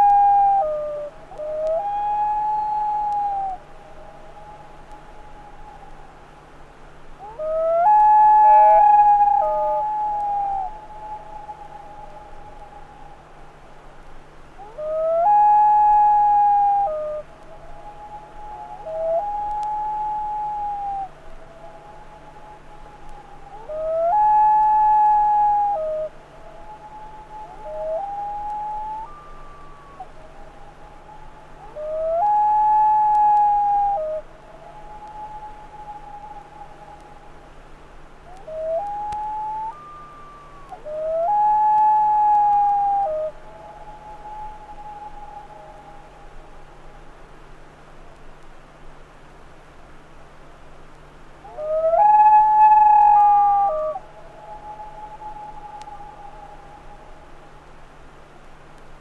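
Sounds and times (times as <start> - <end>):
loons calling: 0.0 - 48.4, 49.9 - 58.9.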